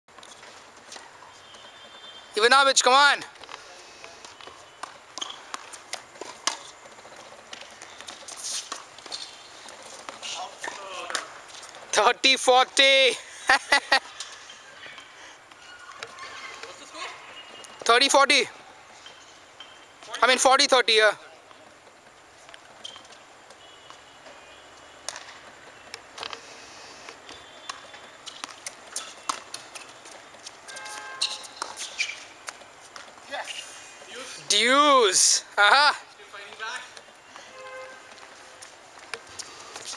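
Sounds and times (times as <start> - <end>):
footsteps on hard court: 3.3 - 12.0, 27.1 - 33.3, 36.4 - 39.9
ball bouncing on hard court: 30.7 - 33.1.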